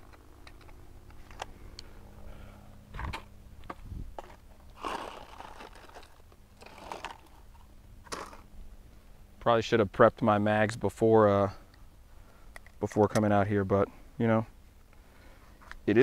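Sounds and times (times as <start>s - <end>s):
rustles of dry leaf litter: 4.1s - 8.4s.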